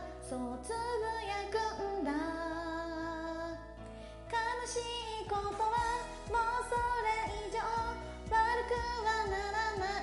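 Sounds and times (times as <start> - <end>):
woman singing pop song: 0.0 - 10.0
backing track with steady beat: 5.3 - 10.0.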